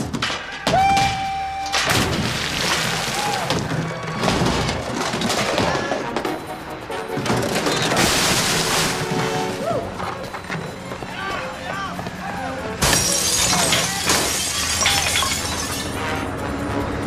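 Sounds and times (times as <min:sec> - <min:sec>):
objects being smashed: 0:00.0 - 0:06.2, 0:07.3 - 0:09.6, 0:12.8 - 0:16.0
glass shattering: 0:00.2 - 0:05.6, 0:07.5 - 0:09.6, 0:12.8 - 0:16.0
music: 0:03.0 - 0:17.0
voices shouting: 0:09.5 - 0:12.8.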